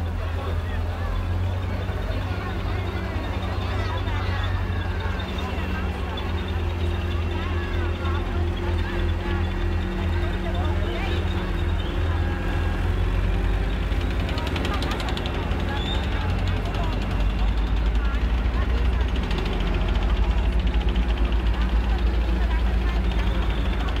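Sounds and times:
crowd voices: 0.0 - 24.0
heavy vehicle engines rumbling: 0.0 - 24.0.

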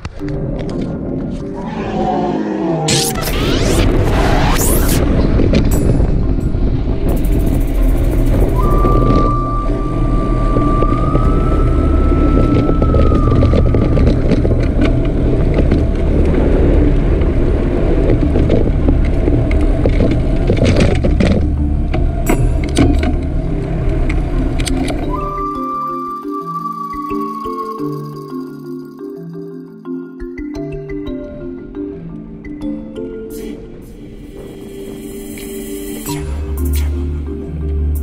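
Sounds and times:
wind buffeting microphone: 5.0 - 25.6
thin high tone: 25.1 - 29.7.

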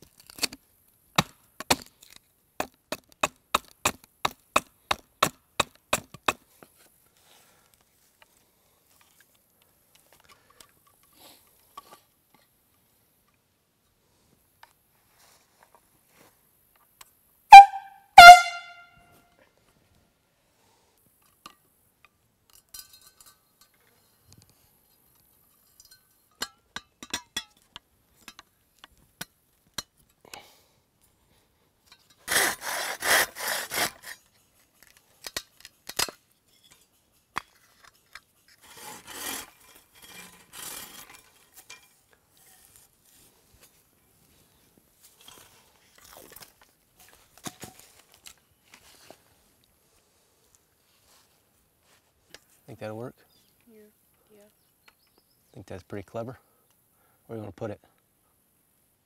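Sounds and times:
air horn blasts: 17.5 - 19.1.

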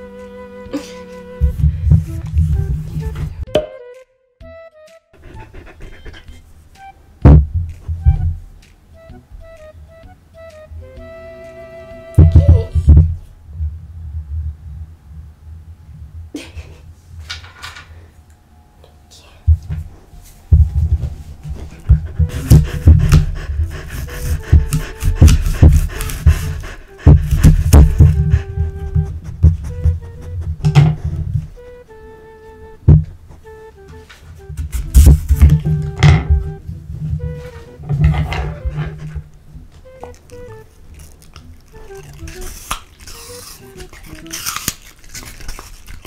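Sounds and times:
plucked background music: 0.0 - 13.0, 19.4 - 46.0
dog crunching apple: 22.3 - 28.4, 39.8 - 46.0.

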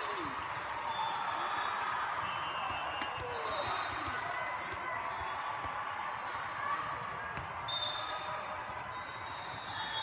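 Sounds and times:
crowd chatter: 0.0 - 10.0
volleyballs thudding: 2.6 - 6.0.

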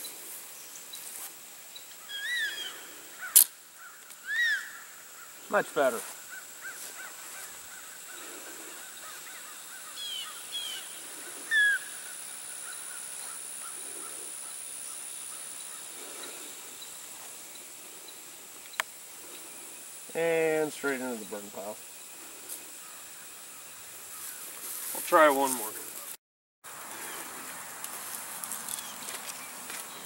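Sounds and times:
short bird calls: 2.0 - 5.3, 6.3 - 14.6
man speaking: 5.5 - 6.1, 20.1 - 21.8, 24.9 - 25.8.

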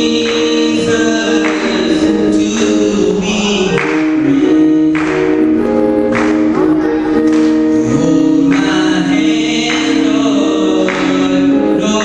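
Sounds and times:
man singing gospel song: 0.0 - 12.0.

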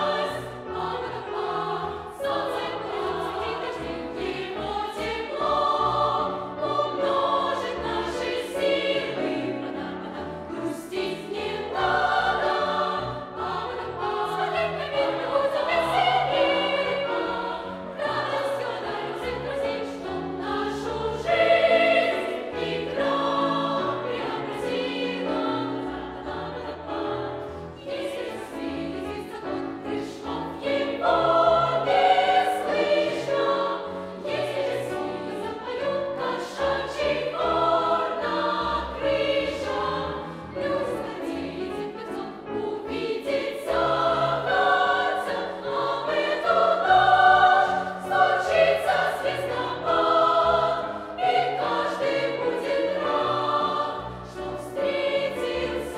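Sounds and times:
piano accompaniment: 0.0 - 55.9
youth choir singing: 0.0 - 55.9.

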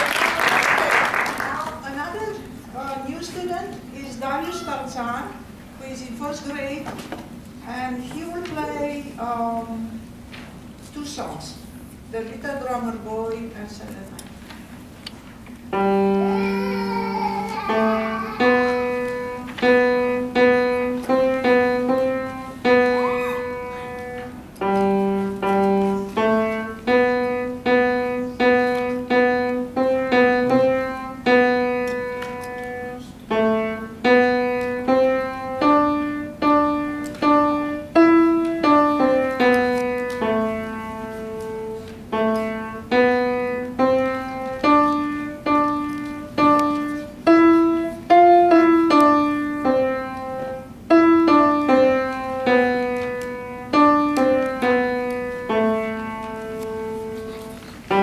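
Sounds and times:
grand piano melody: 15.6 - 58.0.

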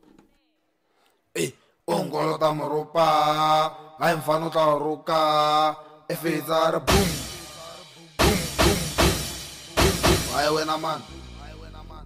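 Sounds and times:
drum hit: 6.9 - 12.0
man chanting held notes: 6.9 - 12.0.

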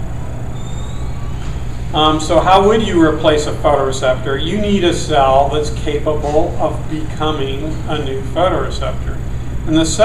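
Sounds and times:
low room noise rumble: 0.0 - 10.0
man speaking: 1.9 - 10.0.

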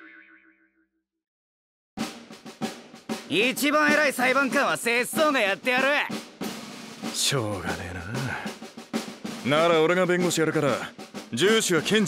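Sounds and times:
comic boing sound effect: 0.0 - 0.7.

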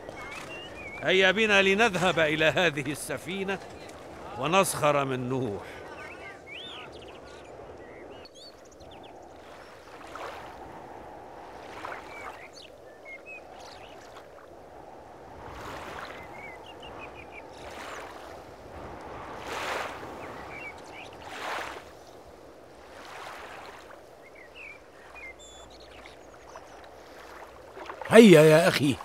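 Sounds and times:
flowing lapping water: 0.0 - 29.0.

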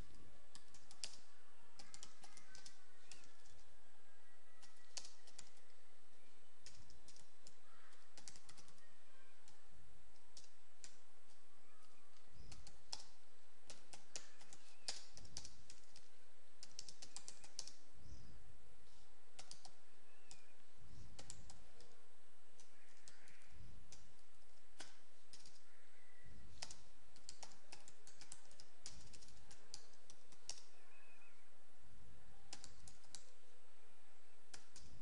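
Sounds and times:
computer keyboard typing: 0.0 - 3.7, 4.6 - 5.8, 6.6 - 17.8, 19.4 - 20.5, 21.1 - 22.0, 22.6 - 25.8, 26.5 - 30.8, 32.5 - 33.4, 34.5 - 35.0.

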